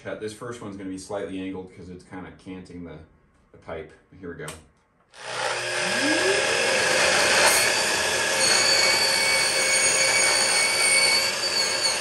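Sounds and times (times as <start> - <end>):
miter saw cutting pipe: 5.2 - 12.0.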